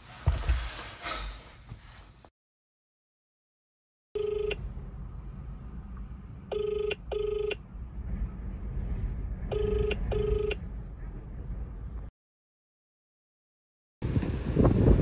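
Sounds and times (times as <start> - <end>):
telephone ringback tone: 4.2 - 4.6, 6.5 - 7.6, 9.5 - 10.6.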